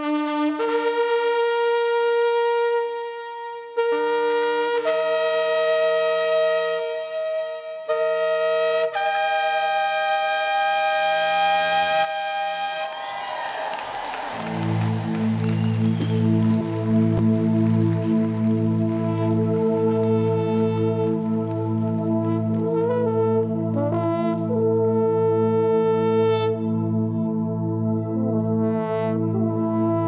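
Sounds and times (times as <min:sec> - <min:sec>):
ram's horns blowing long blasts: 0:13.7 - 0:26.9
music with low pulsing chords: 0:14.4 - 0:30.0.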